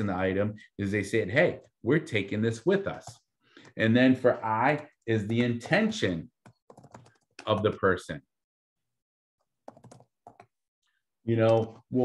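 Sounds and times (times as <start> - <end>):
typing on computer keyboard: 6.4 - 7.8, 9.6 - 10.6.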